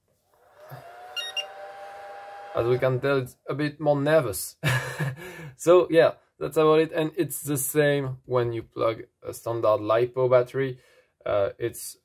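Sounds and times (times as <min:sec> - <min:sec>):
cooling fan whirring: 0:00.4 - 0:03.0
short electronic beeps: 0:01.2 - 0:01.5.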